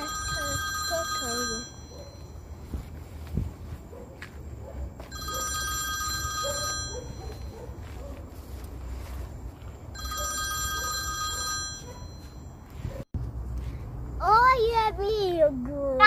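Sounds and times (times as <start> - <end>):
mobile phone electronic ringtone: 0.0 - 2.4, 5.1 - 7.3, 10.0 - 12.6.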